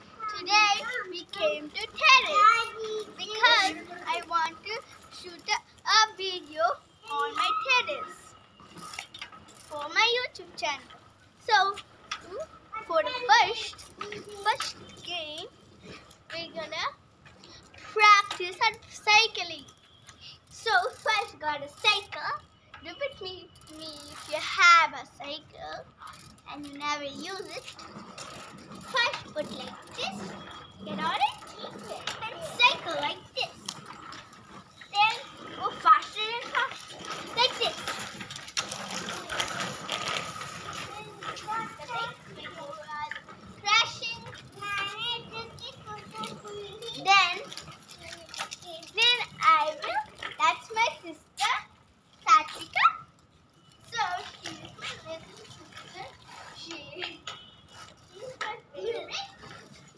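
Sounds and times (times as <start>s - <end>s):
child's voice: 0.0s - 8.4s, 9.6s - 33.8s, 34.9s - 38.1s, 40.6s - 53.1s, 53.9s - 57.4s, 58.1s - 59.8s.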